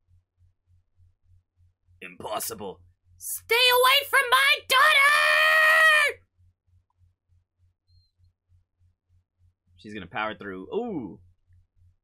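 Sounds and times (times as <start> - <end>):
woman's battle cry: 3.4 - 6.2.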